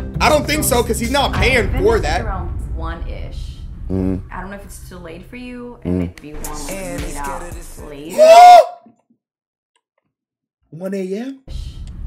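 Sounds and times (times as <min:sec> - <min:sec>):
person exclaiming: 0:08.1 - 0:08.8.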